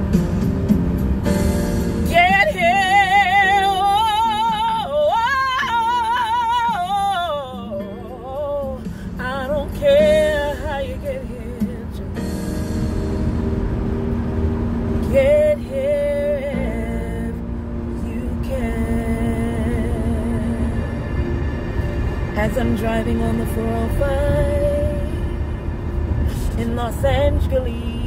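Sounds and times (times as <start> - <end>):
car road rumble: 0.0 - 28.0
held backing chords: 0.0 - 28.0
woman singing a slow ballad: 2.0 - 12.8, 15.0 - 21.2, 22.3 - 25.6, 26.2 - 28.0.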